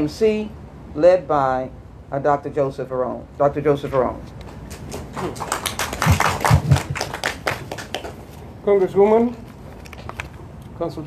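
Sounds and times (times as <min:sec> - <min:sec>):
people clapping: 0:04.4 - 0:08.4.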